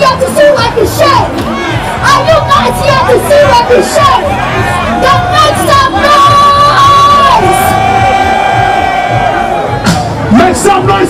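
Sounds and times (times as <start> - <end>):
crowd cheering: 0.0 - 11.0
live concert music: 0.0 - 11.0.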